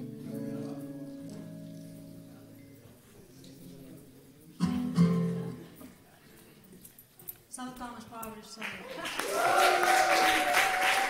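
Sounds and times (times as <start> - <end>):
guitar chords strummed: 0.0 - 3.0, 4.6 - 5.6.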